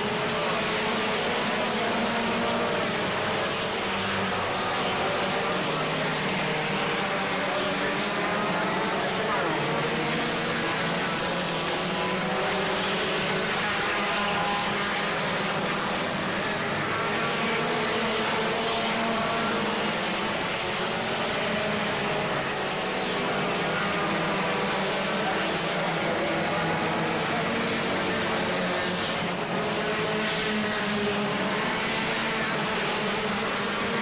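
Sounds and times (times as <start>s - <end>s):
race car engines droning: 0.0s - 34.0s.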